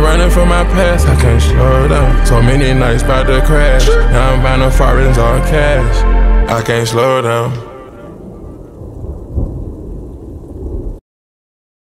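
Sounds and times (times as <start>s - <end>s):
thunder rumbling: 0.0s - 11.0s
rain: 7.7s - 11.0s.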